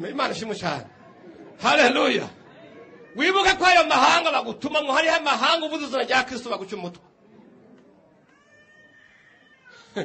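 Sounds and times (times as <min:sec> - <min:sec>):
high-pitched cry: 0:08.3 - 0:10.0.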